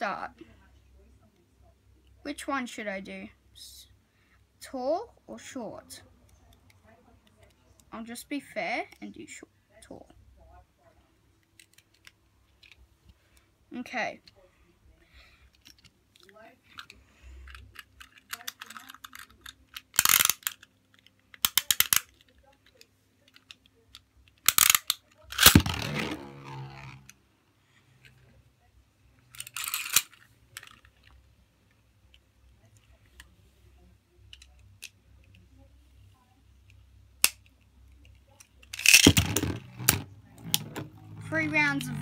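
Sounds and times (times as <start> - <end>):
plastic and metal clicks: 15.6 - 26.0
spinning top whirring: 25.4 - 27.1.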